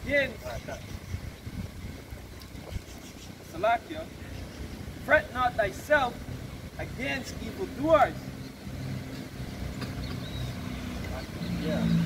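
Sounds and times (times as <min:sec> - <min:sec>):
road traffic: 0:00.0 - 0:12.0
vehicle engine humming: 0:00.0 - 0:12.0.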